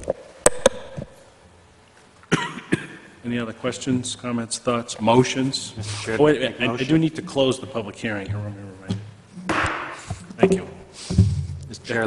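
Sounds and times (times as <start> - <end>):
person coughing: 2.3 - 3.1.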